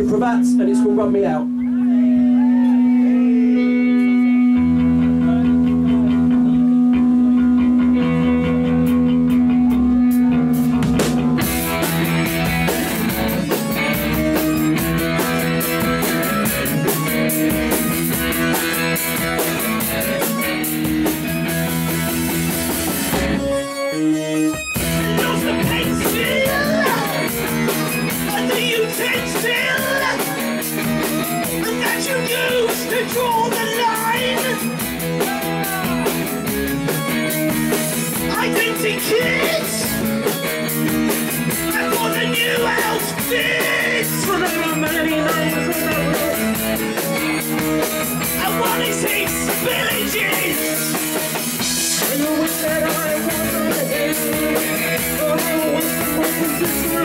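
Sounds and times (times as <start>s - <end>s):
bass line: 0.0s - 57.0s
punk band playing: 0.0s - 57.0s
drums and crashing cymbals: 10.1s - 23.6s, 24.6s - 57.0s.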